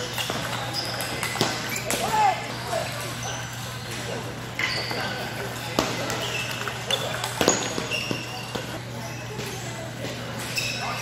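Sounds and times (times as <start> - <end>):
murmur of distant chatter: 0.0 - 11.0
table tennis balls clicking: 6.0 - 8.7
short high squeaks: 10.4 - 11.0.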